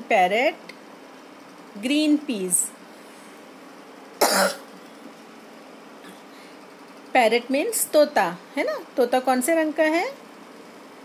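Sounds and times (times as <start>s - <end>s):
short cough: 4.2s - 4.7s.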